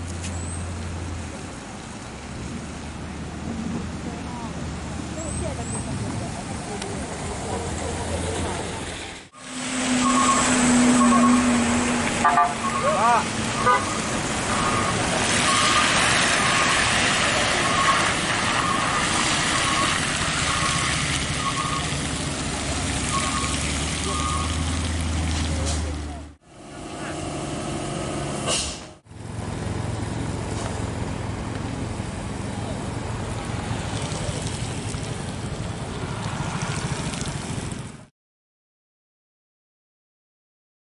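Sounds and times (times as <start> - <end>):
vehicle engines rumbling: 0.0 - 38.1
people's voices: 4.0 - 9.0
car horns beeping: 9.4 - 16.7, 23.1 - 24.7.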